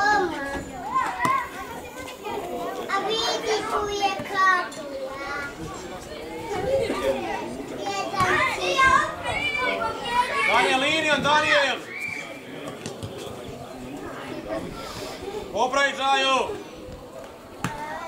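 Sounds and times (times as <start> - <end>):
children shouting: 0.0 - 12.4.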